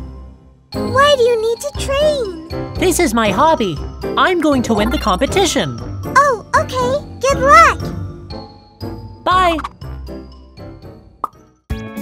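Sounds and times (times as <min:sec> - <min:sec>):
light children's music: 0:00.0 - 0:12.0.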